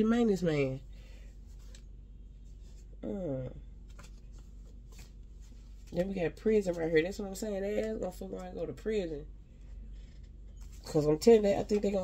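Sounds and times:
paper cards rustling and flicking: 1.4 - 1.9, 3.8 - 7.0, 10.2 - 12.0.

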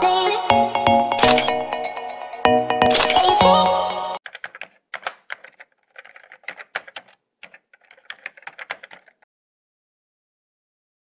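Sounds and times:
background music: 0.0 - 4.2
keyboard key clicks: 1.2 - 1.7, 2.9 - 3.4, 4.2 - 9.2.

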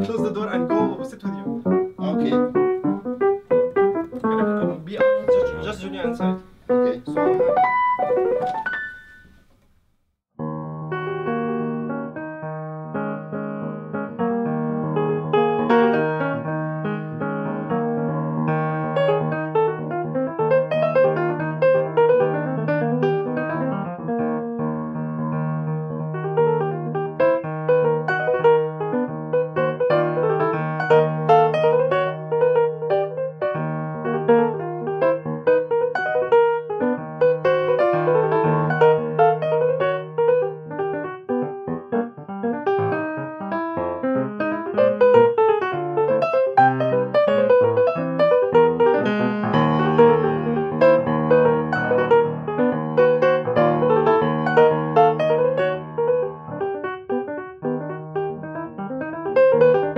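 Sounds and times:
solo jazz piano: 0.0 - 59.9.

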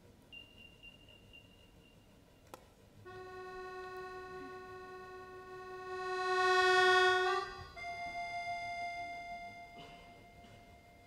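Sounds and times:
accordion holding a long note: 3.1 - 11.0.

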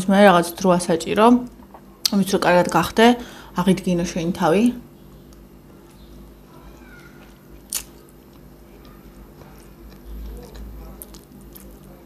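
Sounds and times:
person chewing spaghetti: 5.3 - 12.0.

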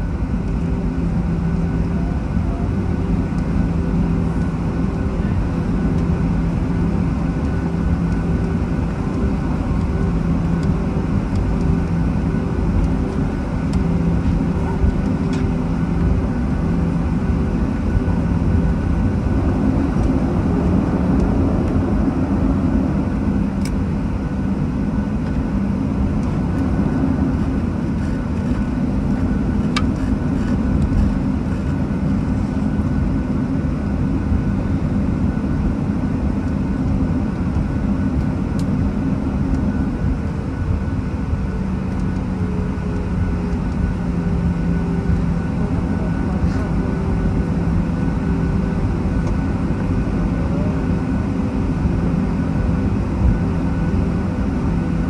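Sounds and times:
jet engines idling rumble: 0.0 - 55.0
steady tonal hum: 0.0 - 55.0.

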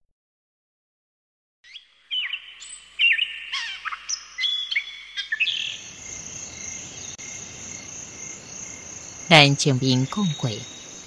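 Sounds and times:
birds chirping: 1.6 - 11.0.

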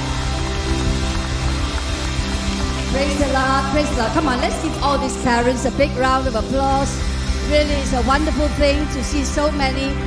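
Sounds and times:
congregation applauding: 0.0 - 4.9.

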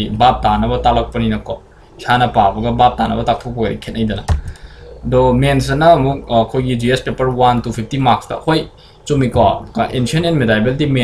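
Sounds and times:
man speaking: 0.0 - 11.0
computer keyboard clicks: 4.3 - 4.7.

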